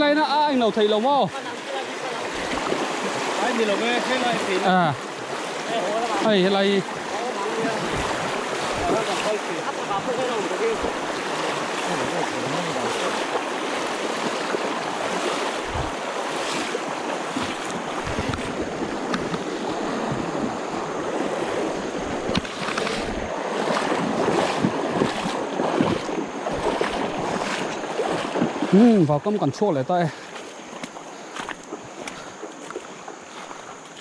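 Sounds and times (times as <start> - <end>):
legs wading and splashing: 0.0 - 34.0
river water rushing over stones: 0.0 - 34.0.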